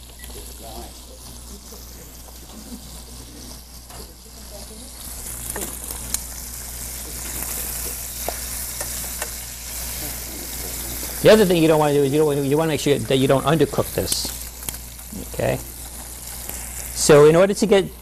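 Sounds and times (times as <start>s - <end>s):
chicken sizzling in hot oil: 0.0s - 18.0s.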